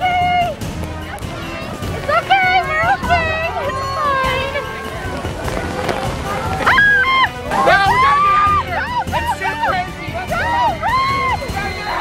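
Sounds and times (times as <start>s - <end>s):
heavy rain hissing: 0.6s - 8.8s.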